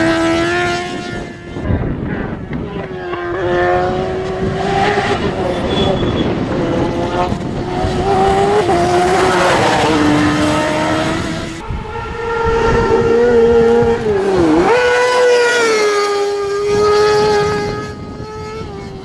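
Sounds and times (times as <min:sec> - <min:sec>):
higher-pitched race engine: 0:00.0 - 0:19.0
race car engine revving: 0:02.2 - 0:19.0.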